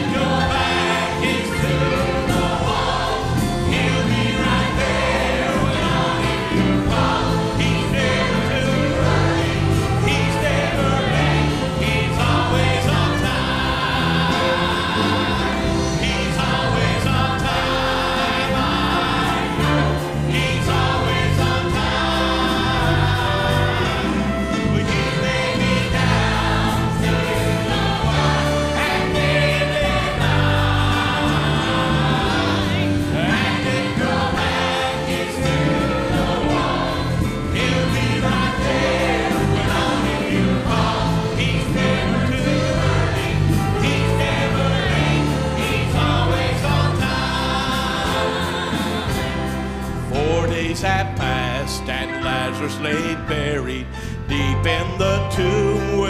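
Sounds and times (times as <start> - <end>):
band playing: 0.0 - 56.0
choir singing gospel: 0.0 - 56.0.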